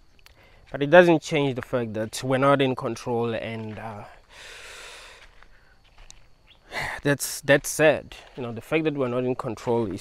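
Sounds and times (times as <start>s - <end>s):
man inhaling: 4.2s - 5.8s.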